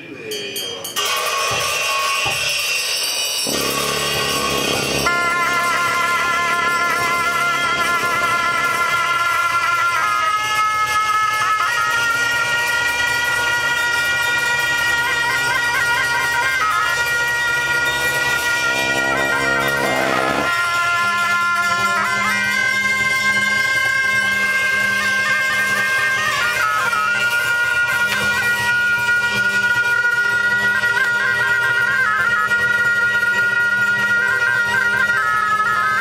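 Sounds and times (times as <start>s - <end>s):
low steady drone: 3.5s - 9.8s, 17.6s - 20.5s
reed shawms playing melody: 3.5s - 10.3s, 16.5s - 20.6s.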